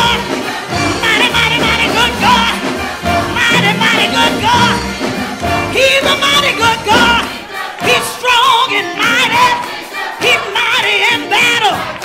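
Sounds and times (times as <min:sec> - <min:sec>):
gospel choir singing: 0:00.0 - 0:12.0
woman singing into a microphone: 0:05.7 - 0:09.6, 0:10.2 - 0:11.8.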